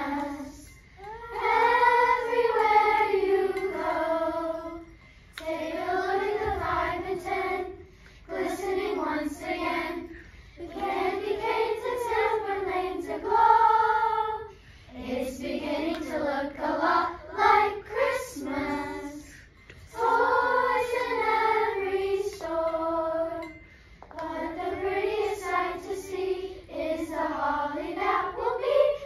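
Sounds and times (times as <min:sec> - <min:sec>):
children's choir singing: 0:00.0 - 0:29.0.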